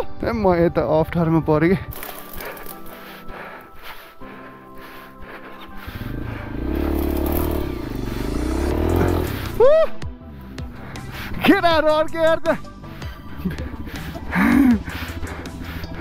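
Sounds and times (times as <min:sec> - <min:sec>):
background music: 0:00.0 - 0:16.0
dirt bike engine revving: 0:05.7 - 0:09.7.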